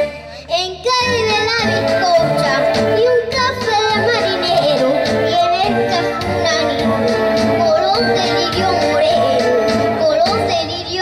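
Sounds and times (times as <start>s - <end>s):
keyboard accompaniment: 0.0s - 11.0s
solo voice singing with vibrato: 0.0s - 11.0s.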